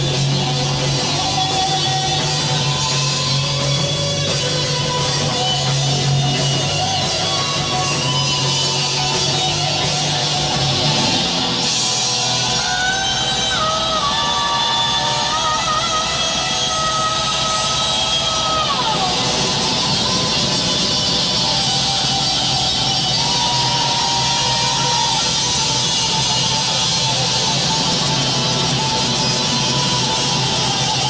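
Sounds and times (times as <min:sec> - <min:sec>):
heavy metal band playing: 0:00.0 - 0:31.0.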